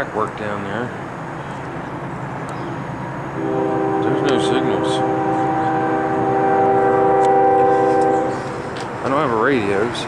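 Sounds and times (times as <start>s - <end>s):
locomotive air horn chord: 3.4s - 9.9s.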